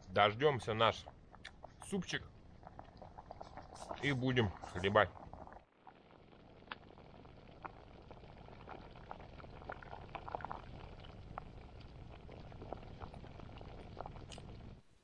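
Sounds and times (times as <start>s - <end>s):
soup bubbling with small pops: 0.0s - 14.8s.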